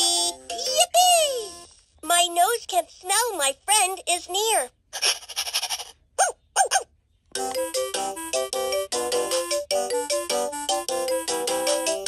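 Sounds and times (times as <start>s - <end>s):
toy voice calls: 0.0s - 6.9s.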